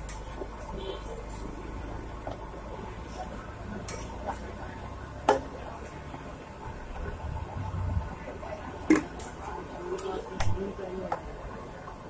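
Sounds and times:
low background rumble: 6.1s - 9.9s.

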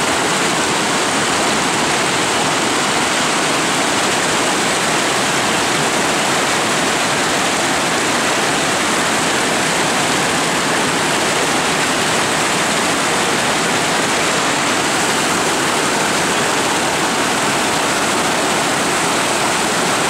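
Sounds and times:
river rapids rushing: 0.0s - 20.0s.

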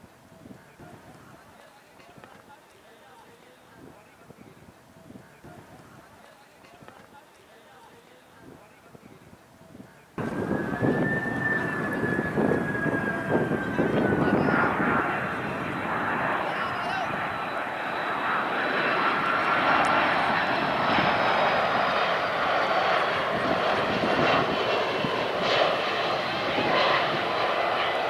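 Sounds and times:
jet airliner passing overhead: 10.2s - 28.0s.

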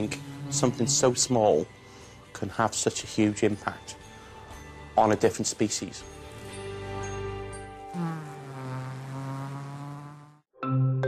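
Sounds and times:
honeybee buzzing: 7.9s - 10.5s.

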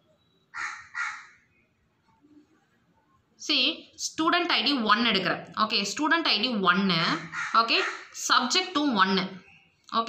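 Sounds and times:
bird's harsh call: 0.6s - 1.4s.

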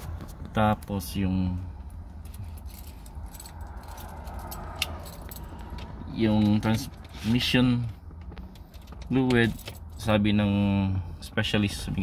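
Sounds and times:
low rumble inside a van: 0.0s - 12.0s.

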